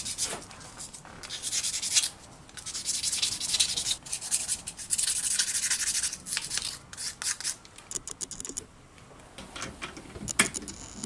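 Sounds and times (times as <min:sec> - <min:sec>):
metal rubbing on sandpaper: 0:00.0 - 0:07.6.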